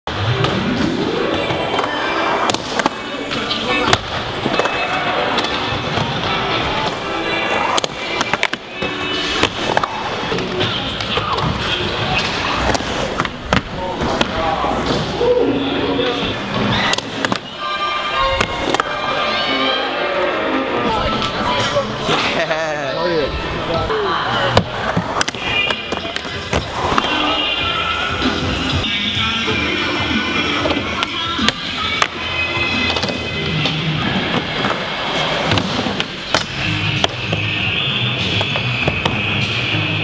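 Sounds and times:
skateboard wheels rolling: 0.1s - 22.3s, 24.4s - 28.8s, 29.5s - 40.0s
music: 0.1s - 40.0s
voices: 1.2s - 39.0s.

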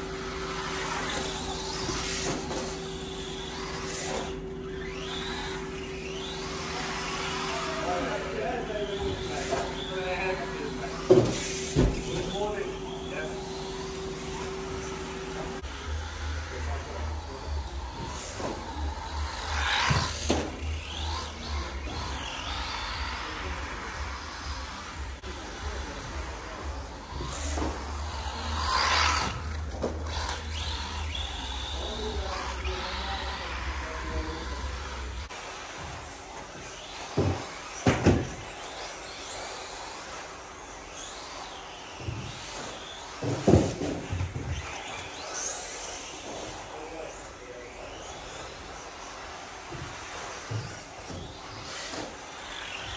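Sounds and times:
toy car motor whining: 0.0s - 52.9s.

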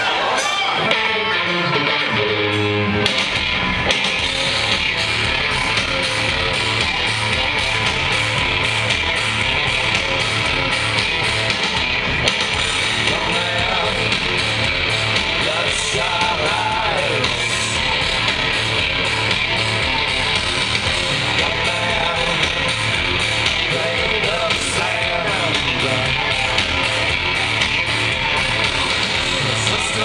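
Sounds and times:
drums: 0.0s - 30.0s
electric guitars: 0.0s - 30.0s
bass guitar: 0.1s - 30.0s.

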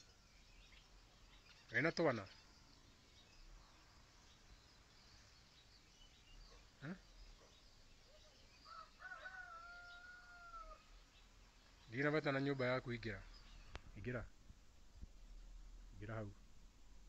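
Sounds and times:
faint bird chirps: 0.0s - 14.3s
distant rooster crowing: 8.6s - 11.0s.

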